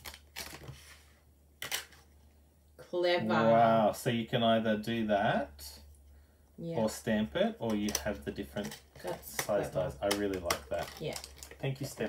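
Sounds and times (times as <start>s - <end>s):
plastic rustling clicks: 7.7s - 12.0s.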